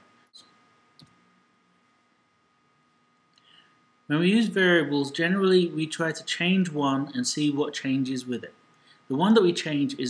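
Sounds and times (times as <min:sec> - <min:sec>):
faint clicks: 0:00.4 - 0:01.2.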